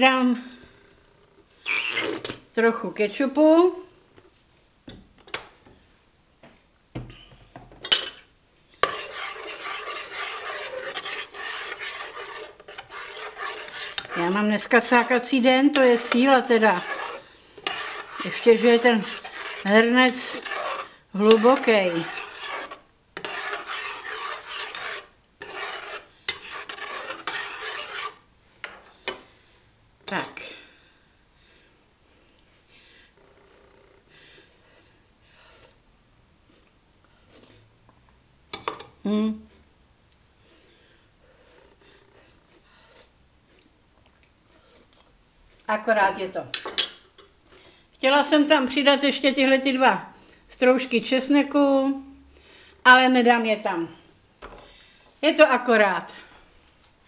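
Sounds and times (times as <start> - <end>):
metal spoon stirring in pot: 7.8 - 29.3
spoon clinking against pot: 46.5 - 47.3.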